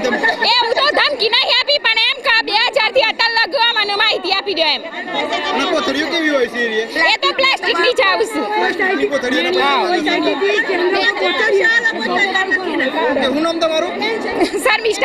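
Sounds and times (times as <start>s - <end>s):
women talking: 0.4s - 5.4s, 7.0s - 8.6s, 10.1s - 13.1s, 14.4s - 15.0s.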